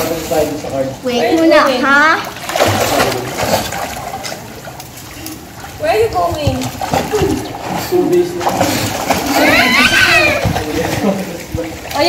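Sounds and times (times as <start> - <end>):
swimmer splashing pool water: 0.0 - 12.0.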